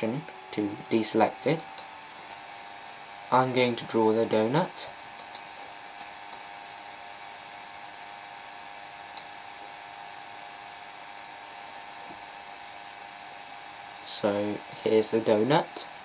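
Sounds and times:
fan-like room hum and hiss: 0.0s - 16.0s
mouse clicks: 5.2s - 5.5s.

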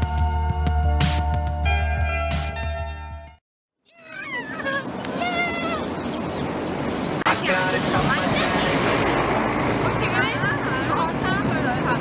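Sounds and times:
background music: 0.0s - 3.4s
high-pitched voices calling out: 3.8s - 6.0s
roadside noise: 3.8s - 12.0s.

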